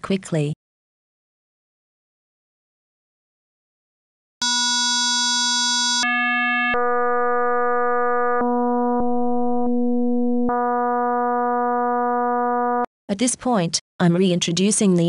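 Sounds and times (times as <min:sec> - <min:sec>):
synth tone changing timbre: 0:06.0 - 0:12.9.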